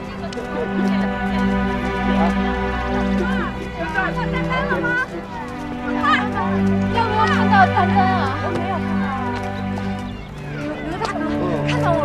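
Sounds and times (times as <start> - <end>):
women talking: 0.0 - 12.0.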